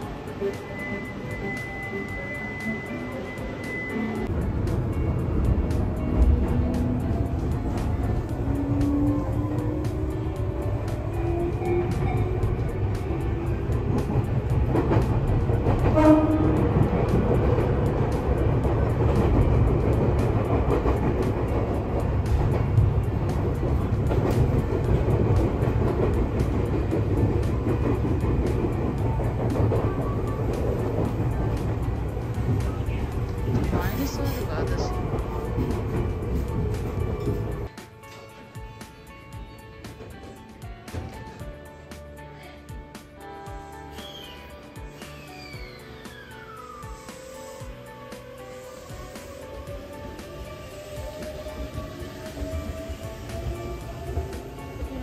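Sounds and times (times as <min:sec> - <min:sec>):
rail clicks: 0:00.0 - 0:41.5, 0:44.0 - 0:55.0
train wheels rumbling on track: 0:00.0 - 0:41.8, 0:43.6 - 0:55.0.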